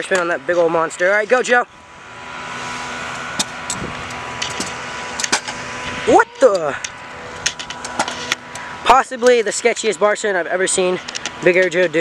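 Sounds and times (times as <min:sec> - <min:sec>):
scooter wheels rolling on concrete: 0:02.9 - 0:12.0.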